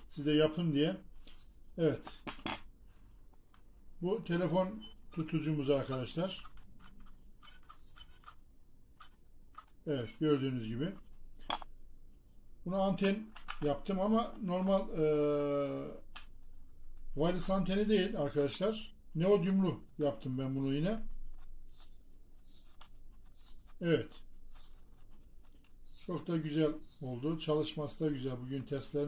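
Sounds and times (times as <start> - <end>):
man speaking: 0.0 - 1.0, 1.8 - 2.2, 4.0 - 6.5, 9.8 - 11.1, 12.6 - 16.1, 17.1 - 21.1, 23.8 - 24.2, 26.0 - 29.0.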